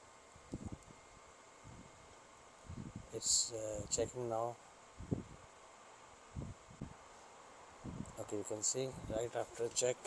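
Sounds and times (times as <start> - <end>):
steady faint hiss: 0.0 - 10.0.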